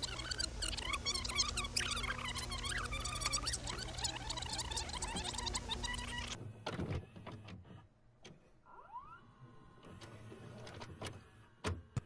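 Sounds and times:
videocassette recorder motor whine: 0:00.0 - 0:06.4.

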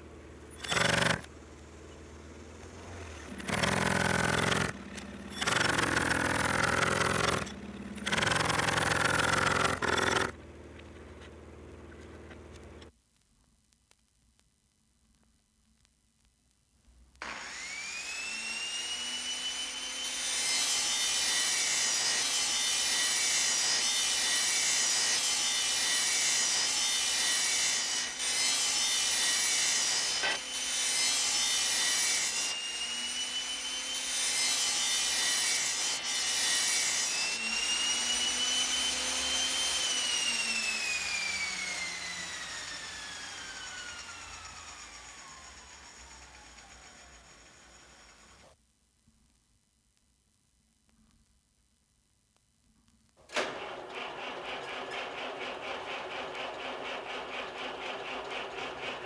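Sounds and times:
electric power saw whine: 0:00.5 - 0:01.3, 0:02.6 - 0:10.3, 0:17.2 - 0:48.6, 0:53.3 - 0:59.0
saw rasping through wood: 0:00.6 - 0:01.3, 0:03.3 - 0:10.4, 0:17.2 - 0:48.3, 0:54.3 - 0:59.0.

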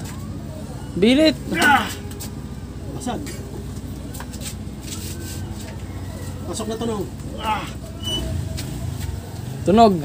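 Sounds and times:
man exclaiming loudly: 0:01.5 - 0:02.0, 0:07.4 - 0:07.8.

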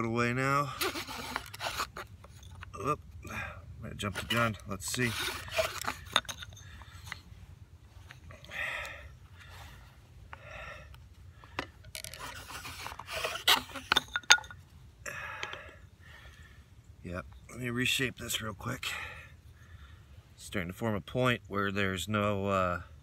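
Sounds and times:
wooden spindle scraping hearth board: 0:00.7 - 0:02.7, 0:04.0 - 0:07.2, 0:11.5 - 0:14.2
heavy breathing: 0:03.2 - 0:04.5, 0:05.2 - 0:07.4, 0:08.0 - 0:13.4, 0:15.0 - 0:16.8.

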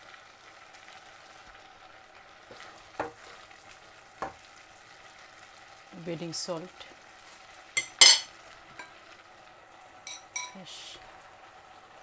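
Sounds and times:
curry sizzling in pot: 0:00.0 - 0:12.0
metallic clink against steel pot: 0:07.8 - 0:08.9, 0:10.1 - 0:10.6.

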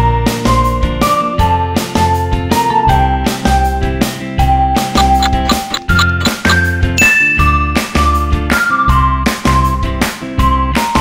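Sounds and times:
bell-like dings: 0:05.5 - 0:08.6.

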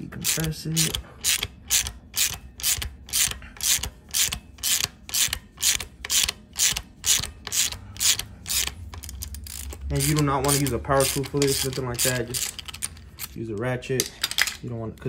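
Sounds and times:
hand ratchet clicking: 0:00.2 - 0:14.5.

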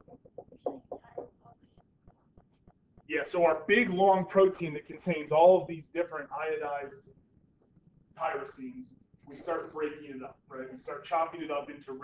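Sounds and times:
stylus tapping and scratching screen: 0:00.0 - 0:05.0.

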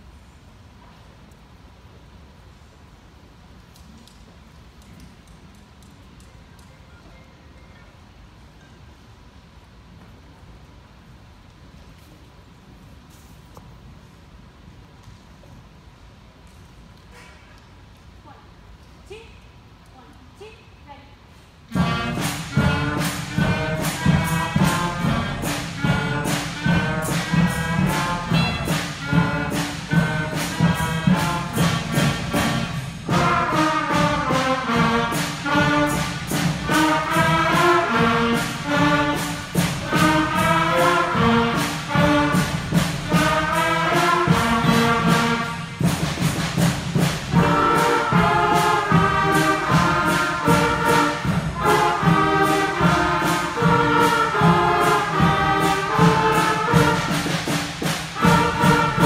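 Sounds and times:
school band playing: 0:21.7 - 0:59.0.

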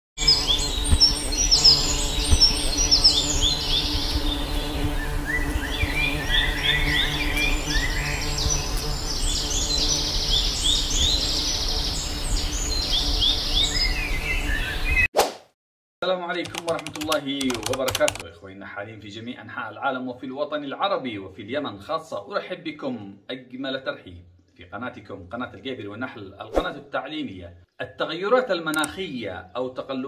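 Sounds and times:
bees buzzing: 0:00.2 - 0:14.6
birds chirping: 0:00.2 - 0:15.1.

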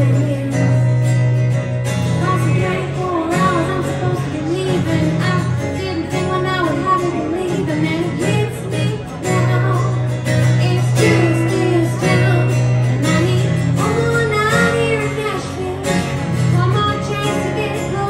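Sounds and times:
strummed acoustic guitars: 0:00.0 - 0:18.0
woman singing country song: 0:00.0 - 0:18.0.

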